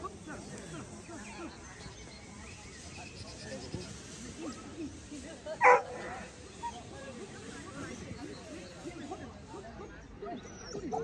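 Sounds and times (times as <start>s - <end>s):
dog barking: 5.6s - 6.0s.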